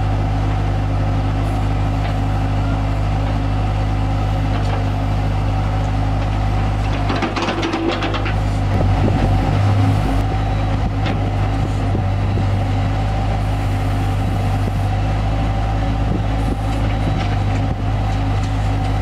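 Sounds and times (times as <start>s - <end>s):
diesel engine running: 0.0s - 19.0s.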